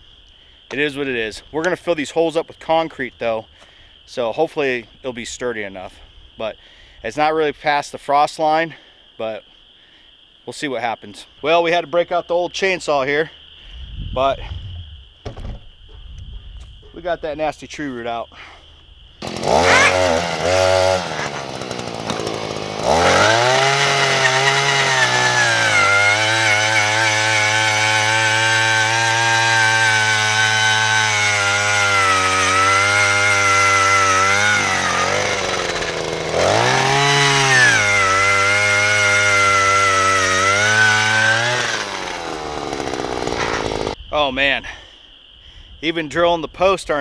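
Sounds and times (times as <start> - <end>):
small two-stroke engine revving: 19.2 - 44.0.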